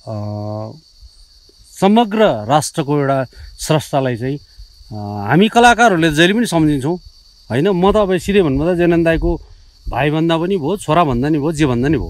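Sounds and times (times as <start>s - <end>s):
man speaking: 0.0s - 0.8s, 1.8s - 12.0s
insects droning: 0.0s - 12.0s.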